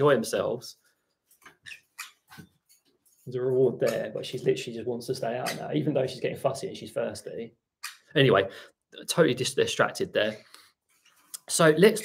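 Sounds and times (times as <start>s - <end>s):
parrot squeaking and chirping: 1.4s - 2.9s, 7.8s - 8.2s.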